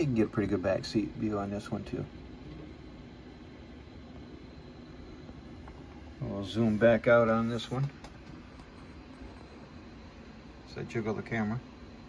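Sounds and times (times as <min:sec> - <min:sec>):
low background hum with hiss: 0:00.0 - 0:12.0.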